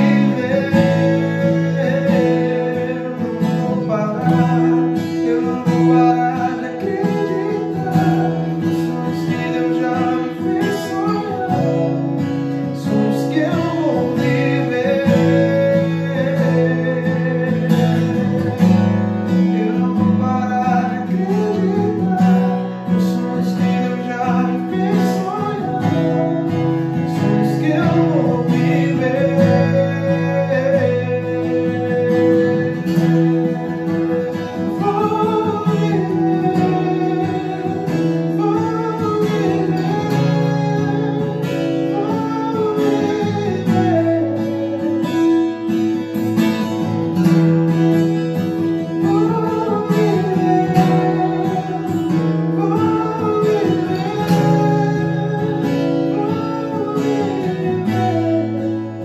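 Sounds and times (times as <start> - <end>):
acoustic guitar strumming chords: 0.0 - 59.0
man singing: 0.0 - 59.0.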